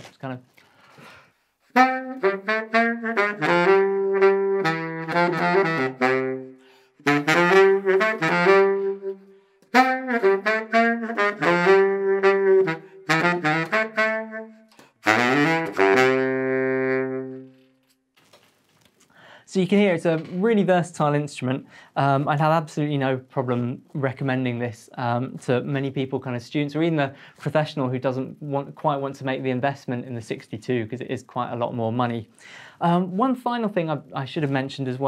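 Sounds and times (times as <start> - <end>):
baritone saxophone solo: 1.6 - 17.9.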